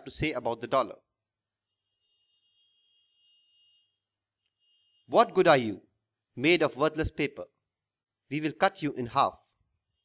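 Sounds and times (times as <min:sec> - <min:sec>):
faint high steady tone: 0:01.1 - 0:06.2, 0:09.4 - 0:10.0.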